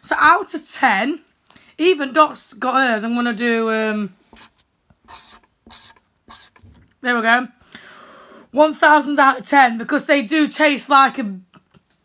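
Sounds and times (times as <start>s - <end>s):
marker scratching on paper: 4.3s - 6.8s.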